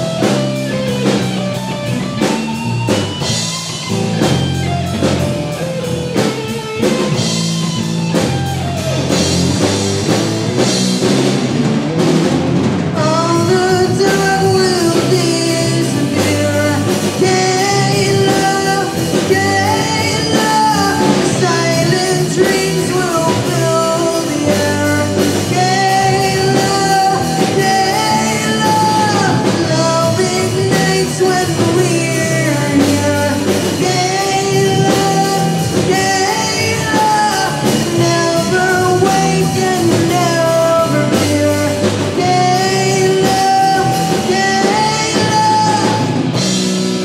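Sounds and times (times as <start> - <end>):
bass guitar: 0.0 - 47.0
distorted electric guitars: 0.0 - 47.0
drum kit: 0.0 - 47.0
person singing lead vocal: 12.9 - 47.0.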